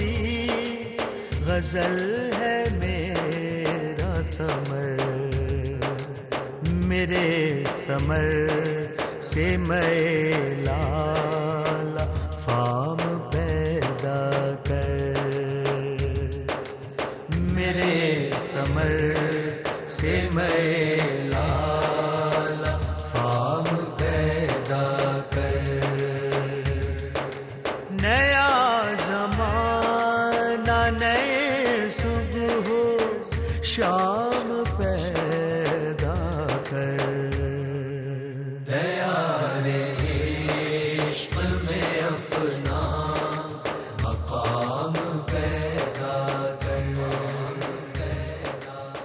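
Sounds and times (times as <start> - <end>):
low beat: 0.0 - 37.7, 40.0 - 49.0
men singing devotional song: 0.0 - 49.0
men chanting in long notes: 17.9 - 27.2, 38.7 - 49.0.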